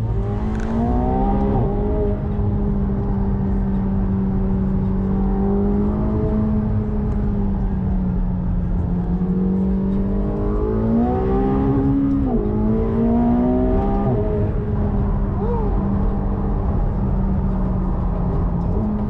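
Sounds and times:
car engine from inside cabin: 0.0 - 19.0.

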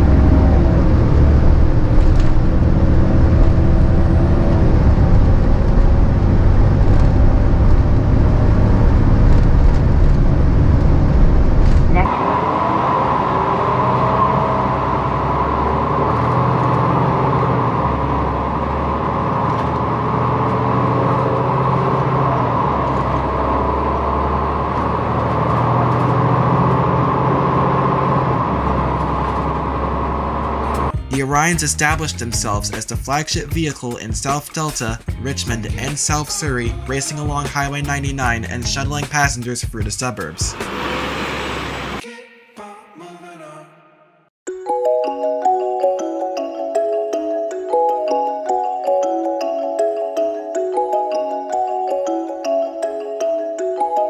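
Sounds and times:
bus engine whine: 0.0 - 32.8, 40.1 - 42.0
bus diesel engine droning: 0.0 - 34.2, 35.0 - 42.0.

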